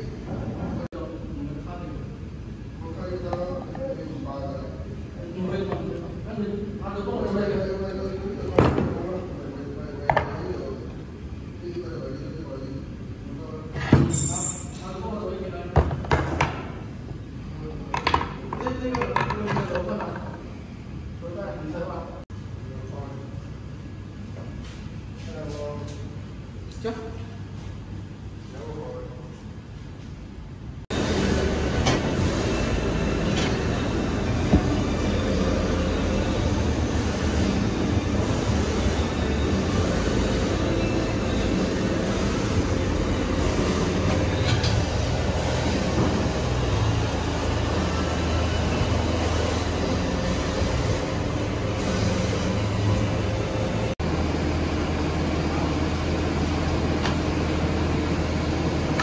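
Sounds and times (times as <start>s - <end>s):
cutting press machine hum: 30.9s - 59.0s.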